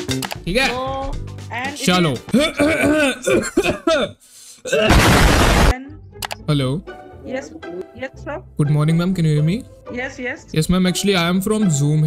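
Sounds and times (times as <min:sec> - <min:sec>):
explosion sound effect: 0:04.9 - 0:05.8.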